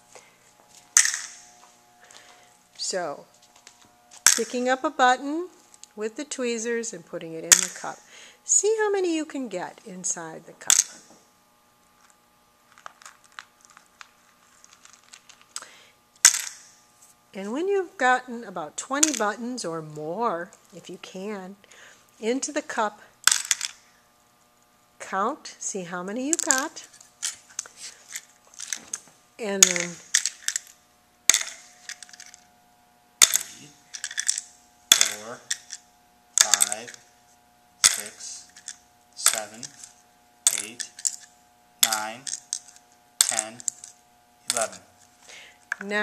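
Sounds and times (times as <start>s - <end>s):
plastic buttons dropping into cup: 1.0s - 1.4s, 4.2s - 4.6s, 7.5s - 7.9s, 16.2s - 16.6s, 19.0s - 19.3s, 23.3s - 23.8s, 26.3s - 26.8s, 29.6s - 30.7s, 31.3s - 32.4s, 33.2s - 35.8s, 36.4s - 37.0s, 37.8s - 39.9s, 40.5s - 43.9s, 44.5s - 44.8s
dried beans rattling in plastic tub: 33.2s - 35.8s, 36.4s - 37.0s.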